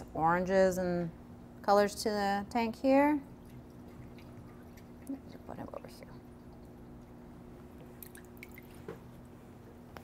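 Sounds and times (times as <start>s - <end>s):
steady low hum: 0.0s - 10.0s
faint water drips: 3.2s - 7.2s, 7.8s - 9.0s.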